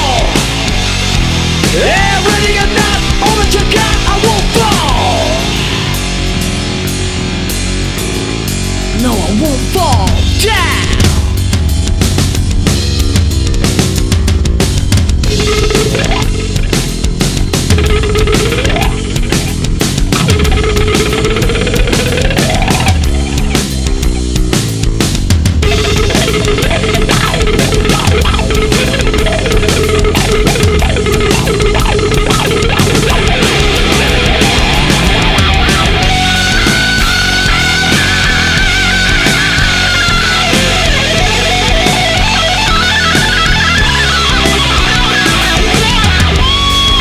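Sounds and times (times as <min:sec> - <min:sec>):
bass: 0:00.0 - 0:47.0
drums: 0:00.0 - 0:47.0
electric guitar melody: 0:00.0 - 0:47.0
heavy rock music: 0:00.0 - 0:47.0.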